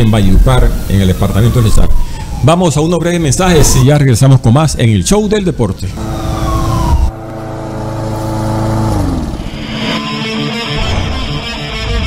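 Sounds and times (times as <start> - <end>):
engine-like transition drone: 6.0 - 11.4.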